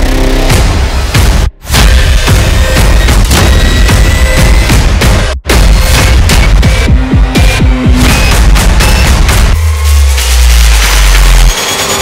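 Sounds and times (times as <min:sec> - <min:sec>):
distorted bass rumble: 0:00.0 - 0:11.5.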